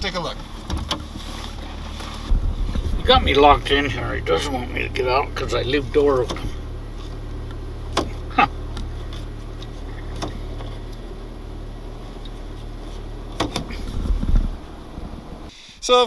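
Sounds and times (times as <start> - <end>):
car engine idling: 0.0 - 15.5.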